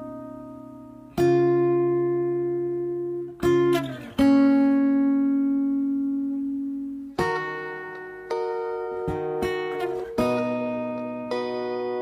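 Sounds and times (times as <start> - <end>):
acoustic guitar chords ringing: 0.0 - 12.0.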